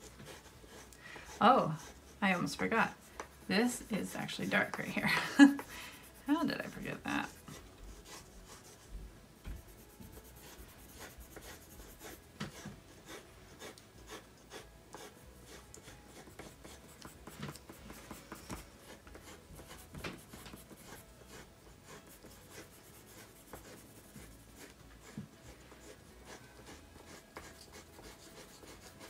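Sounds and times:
colored pencils shading on paper: 0.0 - 29.0.

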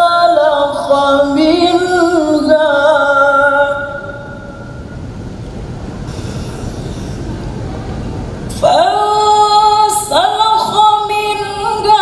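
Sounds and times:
low rumble of amplified microphone: 0.0 - 12.0
in-breath close to microphone: 6.1 - 7.5.

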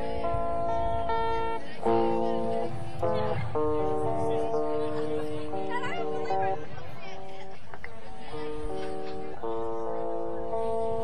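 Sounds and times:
guitar chords ringing: 0.0 - 11.0.

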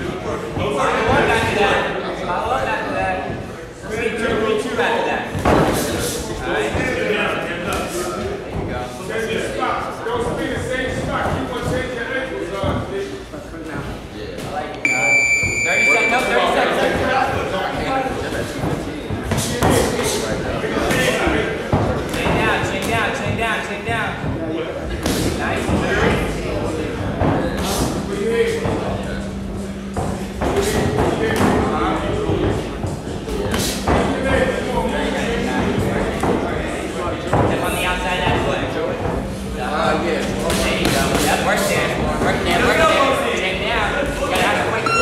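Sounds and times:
people's voices: 0.0 - 45.0.

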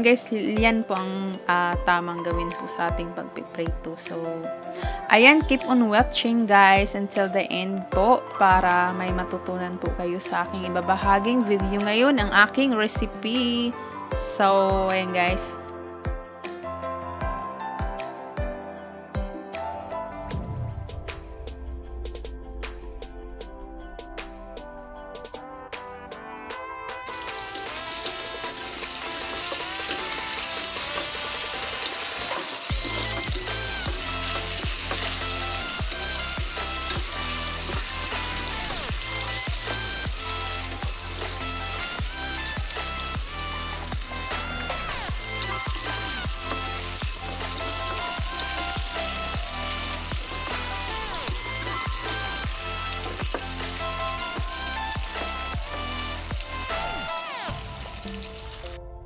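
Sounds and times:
background music with beat: 3.7 - 7.2, 8.0 - 59.0
tofu sizzling in hot oil: 27.1 - 58.8.

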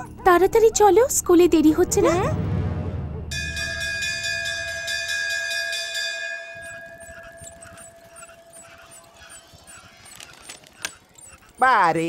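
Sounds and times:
bell-like chime: 3.3 - 9.0.

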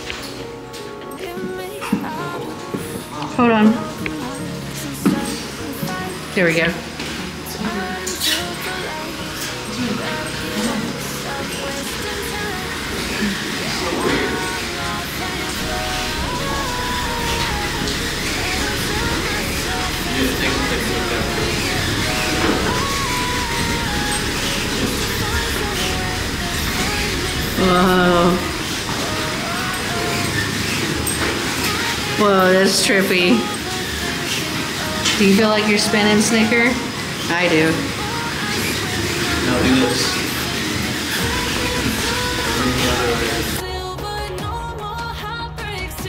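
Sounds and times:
music playing: 0.0 - 46.0
rushing background noise: 4.0 - 43.6
loud wavering voice: 7.8 - 31.1.

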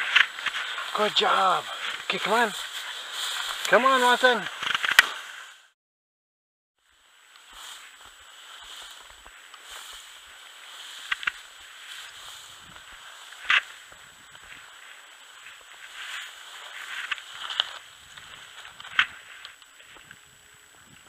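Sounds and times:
footsteps through grass and snow: 0.0 - 5.7, 6.8 - 21.0.

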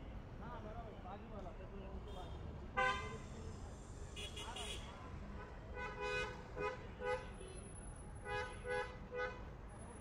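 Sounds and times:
low rumble of street traffic: 0.0 - 10.0.

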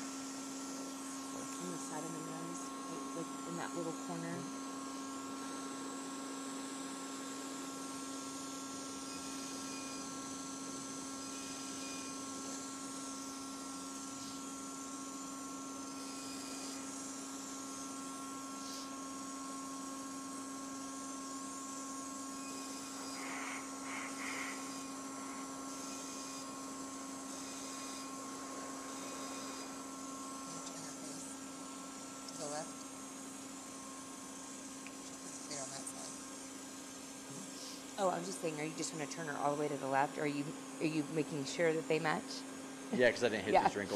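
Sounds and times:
laser system electrical hum: 0.0 - 43.9.

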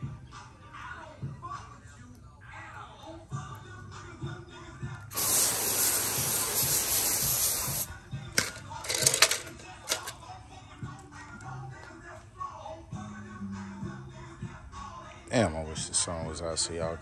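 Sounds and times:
background music: 0.0 - 17.0
hose spraying water: 5.1 - 7.9.

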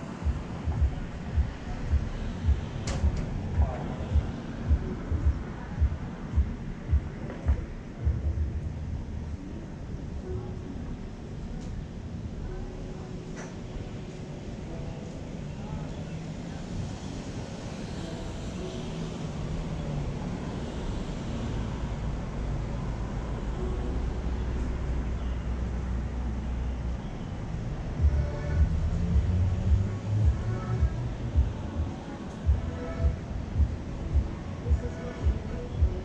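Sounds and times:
indistinct voices: 0.0 - 36.0
vehicle rumble: 0.0 - 36.0.

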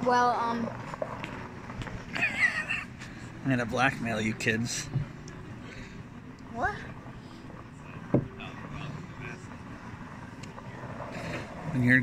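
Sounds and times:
low steady rumble: 0.0 - 12.0
faint background voices: 4.3 - 12.0.

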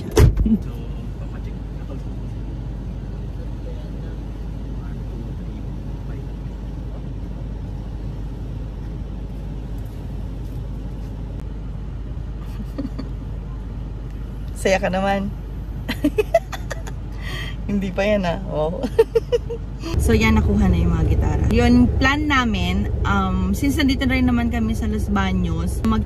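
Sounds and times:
car engine idling: 0.0 - 26.0.

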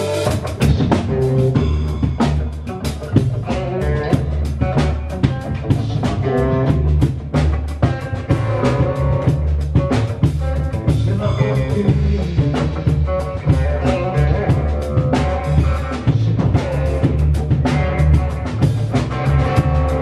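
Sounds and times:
double bass: 0.0 - 20.0
drum kit steady beat: 0.0 - 20.0
electric guitar: 0.0 - 20.0.

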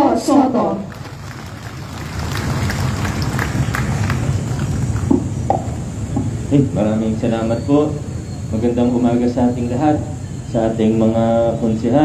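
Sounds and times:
low steady rumble: 0.0 - 12.0
small crowd applauding: 0.9 - 5.3.

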